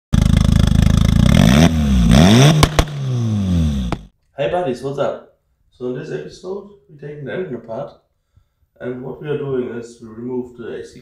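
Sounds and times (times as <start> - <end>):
sharp cracks: 0.2 - 3.2
engine revving: 0.2 - 4.1.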